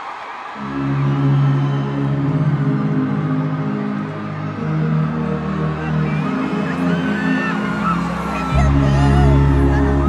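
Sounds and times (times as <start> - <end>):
sustained low chords: 0.6 - 10.0.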